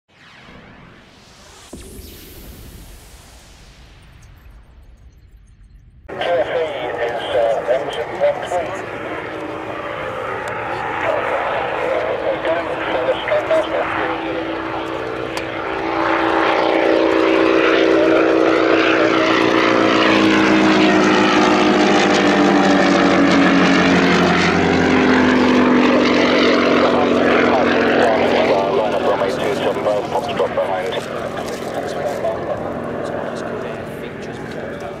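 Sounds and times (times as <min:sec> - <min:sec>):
radial aircraft engine at full power: 0:00.2 - 0:04.9, 0:06.1 - 0:35.0.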